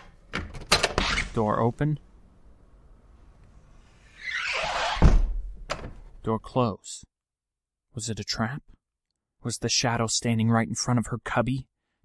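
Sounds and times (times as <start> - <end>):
door closing with heavy thud: 4.7 - 6.1.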